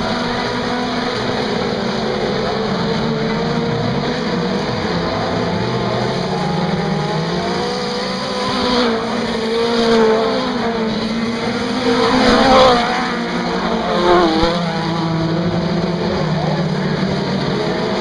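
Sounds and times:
race car engines: 0.0 - 18.0.

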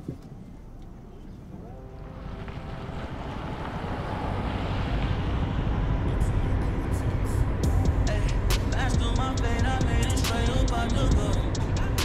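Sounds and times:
car engine and road noise: 0.0 - 12.0
music: 6.0 - 12.0.

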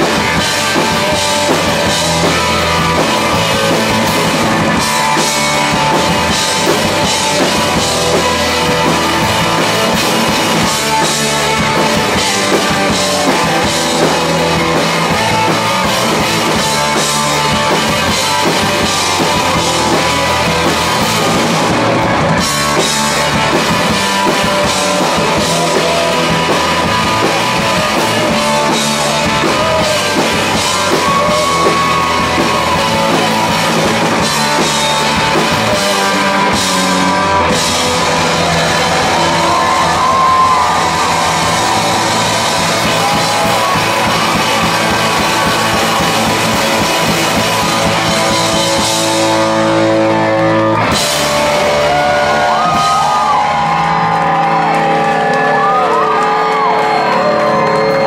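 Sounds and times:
drum kit: 0.0 - 58.0
electric bass: 0.0 - 58.0
electric guitars: 0.0 - 58.0.

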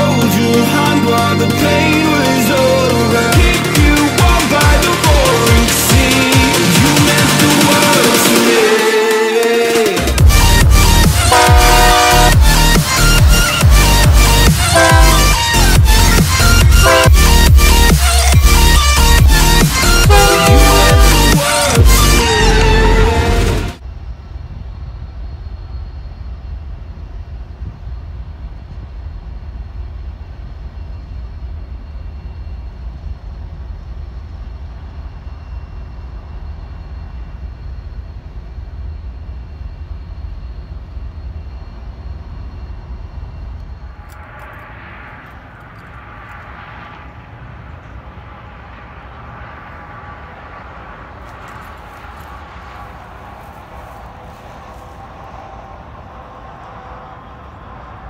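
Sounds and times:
diesel locomotive engine rumble: 0.0 - 58.0
distant train: 0.0 - 58.0.

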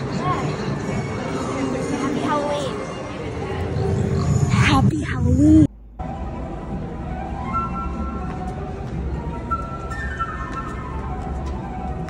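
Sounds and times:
people's voices: 0.0 - 5.7.

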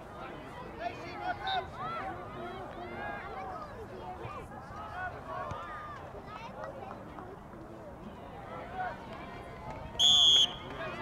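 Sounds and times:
low outdoor background noise: 0.0 - 11.0.

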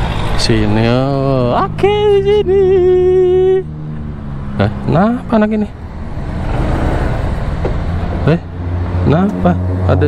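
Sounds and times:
scooter engine rumbling: 0.0 - 9.4.

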